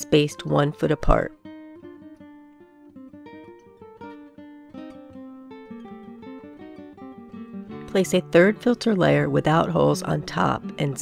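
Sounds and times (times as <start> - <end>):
plucked acoustic guitar melody: 0.0 - 11.0.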